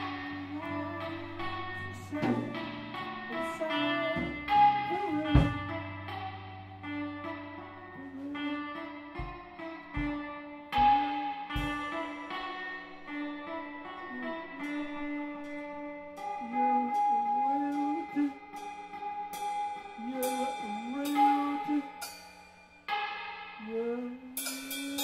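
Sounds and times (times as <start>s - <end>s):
lo-fi improvised band music: 0.0s - 25.0s
cymbal hits: 18.5s - 25.0s.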